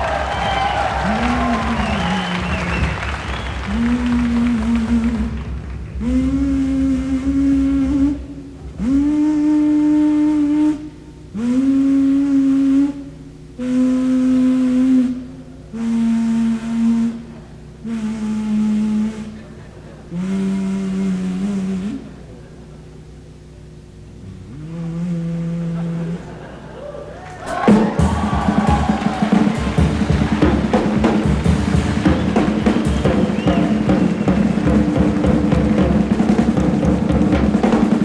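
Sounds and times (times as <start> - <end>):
low instrument playing long notes: 0.0 - 38.0.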